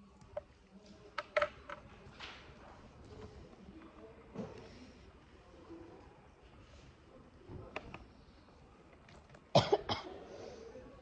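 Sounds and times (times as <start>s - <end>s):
woman coughing: 9.5s - 10.2s.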